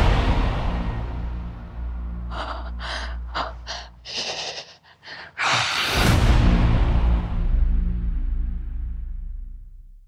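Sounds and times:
low music drone: 0.0s - 9.2s
woman gasping for breath: 2.3s - 6.0s.

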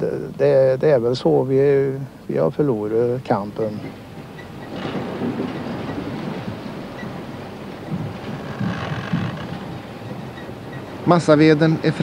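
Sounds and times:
log-handling machinery rumbling: 2.3s - 12.0s
low thuds: 3.9s - 10.8s.

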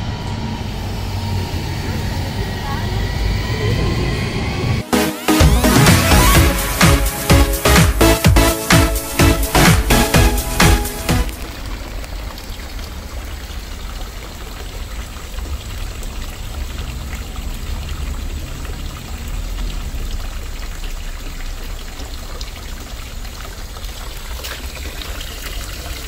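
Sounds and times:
fountain water splashing into basin: 5.6s - 26.0s.

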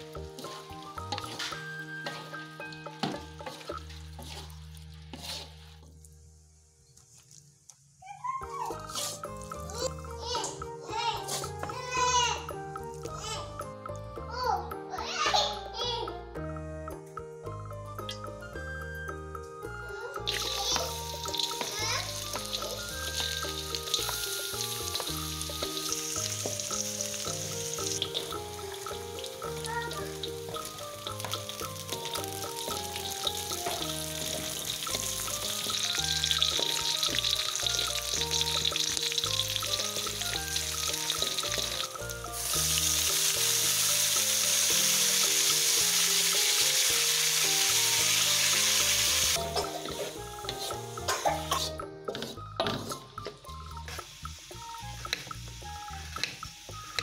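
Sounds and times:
background music: 0.0s - 6.7s, 8.0s - 57.0s
food sizzling in hot oil: 0.0s - 6.9s, 7.8s - 13.6s, 20.0s - 57.0s.

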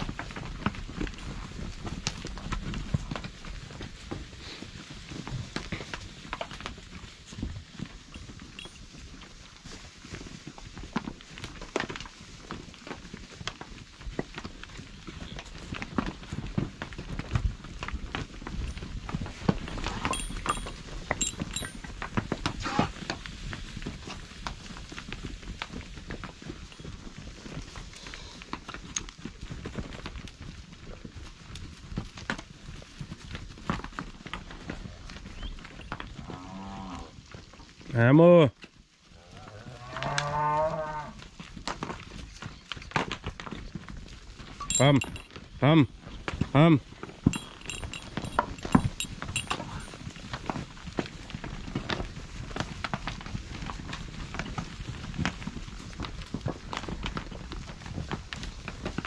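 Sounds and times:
hooves stepping on dry dirt: 0.0s - 59.0s
cattle mooing: 39.2s - 41.2s.

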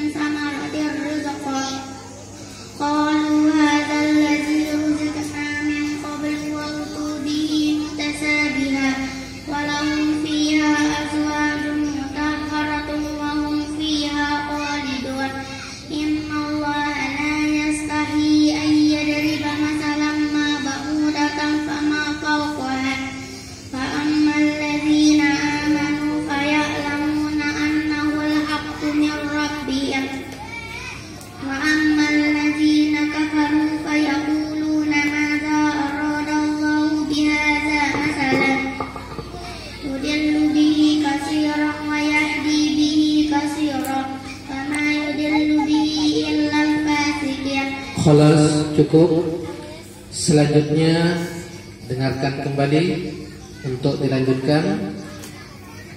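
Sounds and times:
girl chanting into a microphone: 0.0s - 50.1s.

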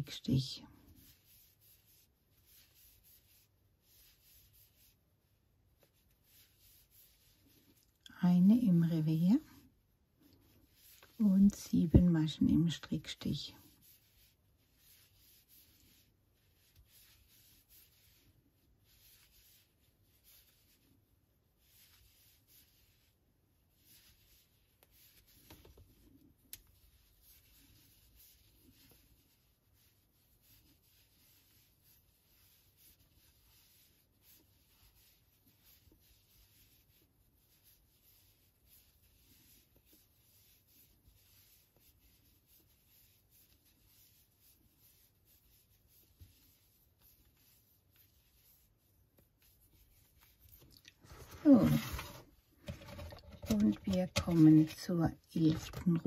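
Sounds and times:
yarn rubbing on crochet hook: 0.0s - 9.7s, 10.5s - 56.0s.

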